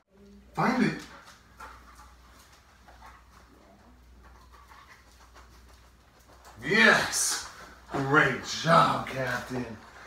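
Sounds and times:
dog panting: 0.9s - 8.7s.

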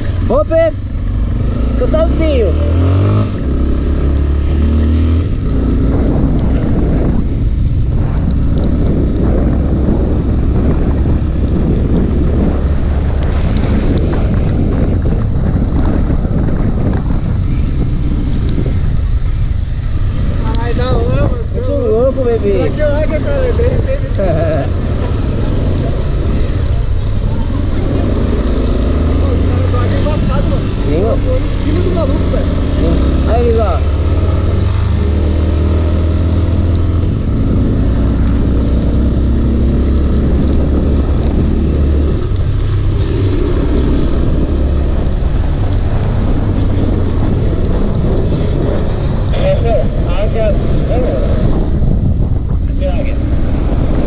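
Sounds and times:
wind buffeting microphone: 0.0s - 54.0s.

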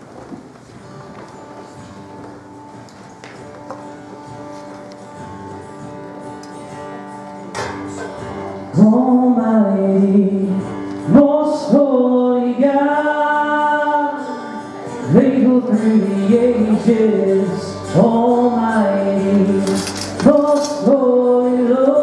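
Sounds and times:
soft guitar: 0.2s - 22.0s
worship band playing: 0.9s - 22.0s
man singing: 8.0s - 22.0s.

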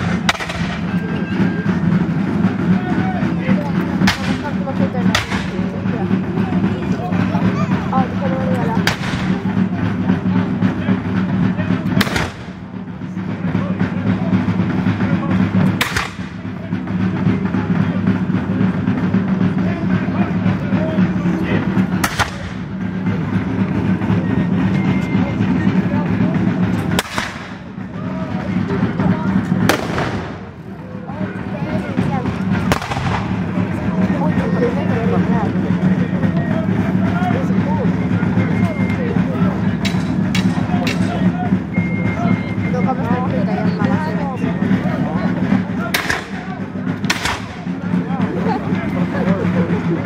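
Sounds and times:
sharp gunshot: 0.0s - 0.8s, 4.1s - 4.4s, 5.1s - 5.5s, 8.8s - 9.4s, 12.0s - 12.6s, 15.8s - 16.4s, 22.0s - 22.6s, 27.0s - 27.6s, 29.7s - 30.4s, 32.7s - 33.4s, 45.9s - 46.4s, 47.1s - 47.6s
musket shots: 0.0s - 1.0s, 4.0s - 4.5s, 5.1s - 5.6s, 8.8s - 9.4s, 12.0s - 12.7s, 15.7s - 16.5s, 22.0s - 22.7s, 26.9s - 27.7s, 29.6s - 30.5s, 32.6s - 33.6s, 45.9s - 46.4s, 47.0s - 47.6s
crowd talking: 0.0s - 50.0s
low background rumble: 0.0s - 50.0s.

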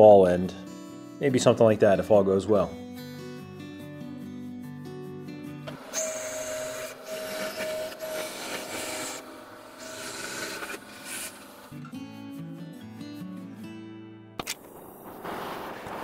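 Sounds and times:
acoustic guitar music: 0.0s - 5.9s, 11.5s - 14.4s
bandsaw cutting metal: 5.7s - 11.8s.

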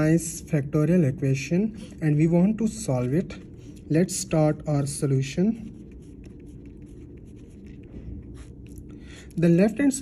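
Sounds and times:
pen scratching on paper: 5.3s - 8.8s.

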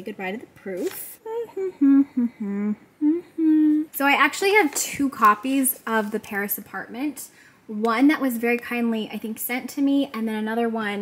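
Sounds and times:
woman humming a tune: 1.3s - 3.9s.

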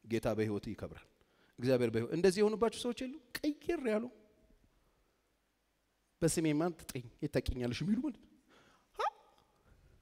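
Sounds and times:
man speaking: 0.0s - 4.4s, 6.2s - 8.3s, 9.0s - 9.3s.

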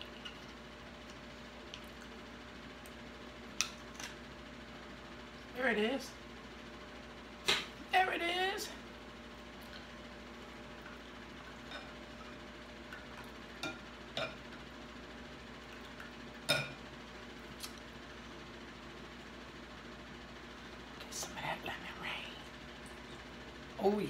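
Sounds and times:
chewing smacks and clicks: 0.0s - 2.2s, 17.6s - 17.9s
faint room hum: 0.0s - 24.0s.

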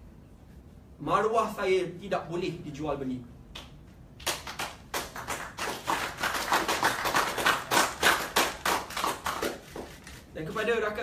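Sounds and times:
small group applauding: 3.6s - 10.2s.

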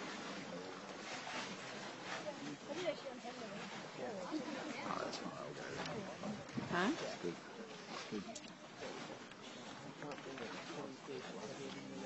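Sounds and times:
people talking indistinctly: 0.5s - 12.0s.

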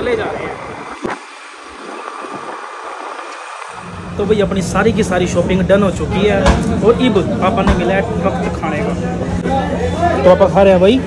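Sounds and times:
wind and road rush: 0.0s - 9.4s.

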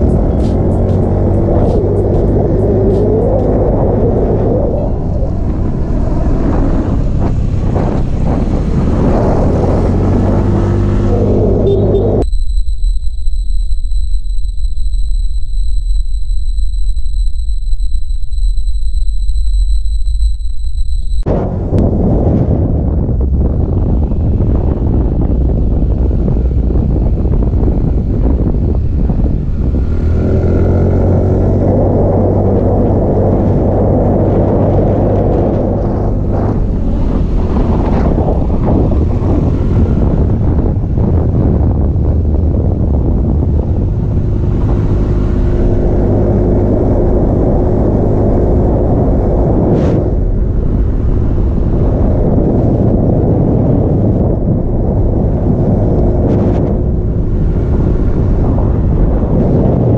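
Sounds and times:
wind rumbling on microphone: 0.0s - 59.9s.

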